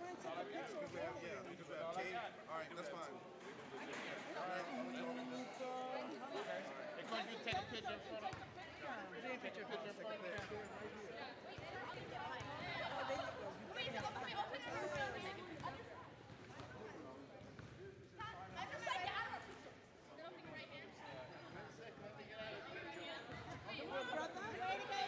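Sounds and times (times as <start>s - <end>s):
overlapping chatter: 0.0s - 25.0s.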